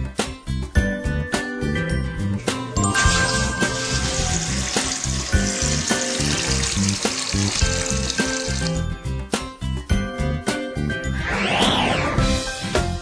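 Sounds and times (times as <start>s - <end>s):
water pouring into bath: 2.9s - 8.8s.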